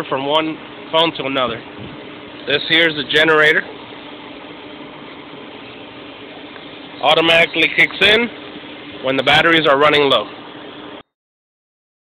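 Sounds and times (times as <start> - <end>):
machinery hum: 0.0 - 11.0.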